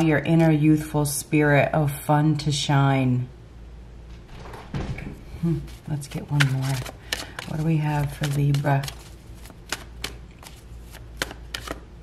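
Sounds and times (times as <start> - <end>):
cards being shuffled by hand: 5.4 - 12.0.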